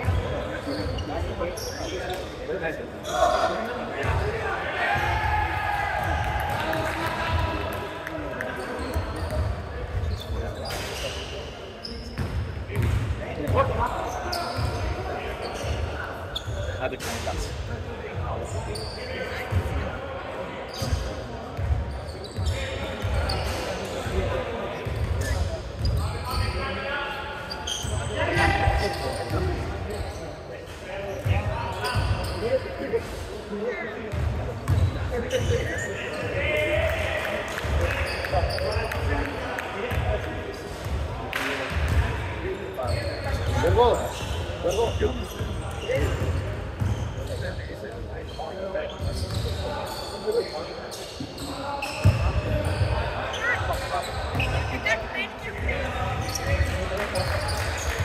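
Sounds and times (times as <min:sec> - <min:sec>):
shoes squeaking on court: 0:00.0 - 0:02.4, 0:08.5 - 0:17.6, 0:18.4 - 0:19.7, 0:20.6 - 0:23.9, 0:27.5 - 0:30.4, 0:31.1 - 0:33.0, 0:34.1 - 0:36.4, 0:41.7 - 0:58.0
players' voices: 0:00.0 - 0:58.0.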